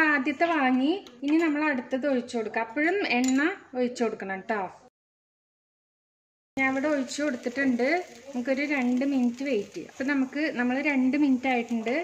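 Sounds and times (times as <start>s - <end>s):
batter sizzling in a pan: 6.6s - 12.0s
woman talking: 6.6s - 12.0s.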